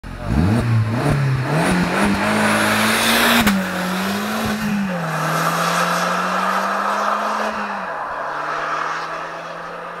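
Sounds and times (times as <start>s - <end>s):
car engine accelerating hard: 0.0s - 10.0s.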